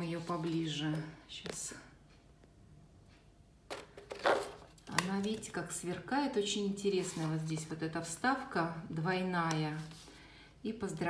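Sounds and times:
paper card rustling: 3.9 - 5.5, 7.0 - 7.7.

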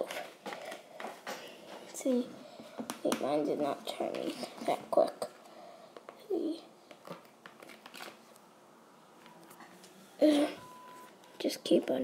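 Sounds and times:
pencil tapping plastic container: 2.7 - 4.8.

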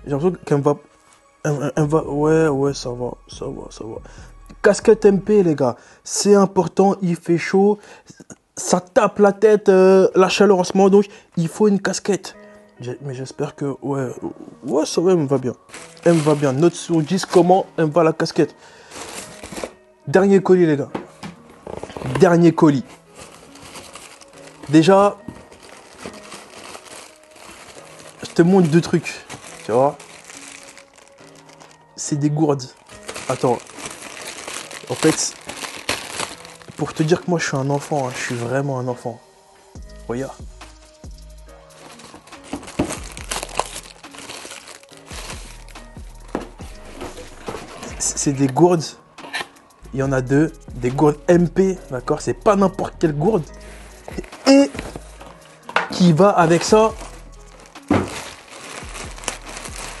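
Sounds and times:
quiet background music: 0.0 - 60.0
plastic bags crinkling: 15.4 - 17.6, 18.7 - 19.8, 21.7 - 38.6, 41.7 - 48.0, 53.8 - 60.0.

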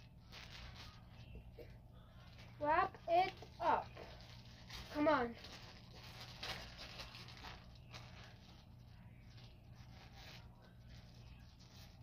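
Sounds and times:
plastic bag crinkling: 0.0 - 1.4, 2.3 - 12.0.

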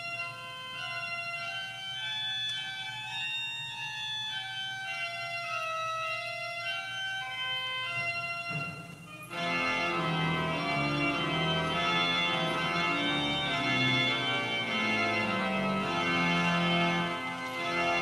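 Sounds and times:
church organ playing chords: 0.0 - 18.0.

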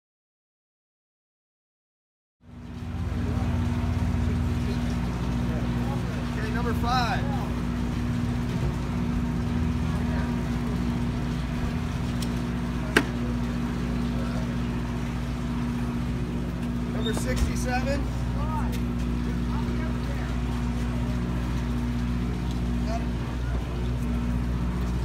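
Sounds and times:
boat engines idling: 2.4 - 25.0.

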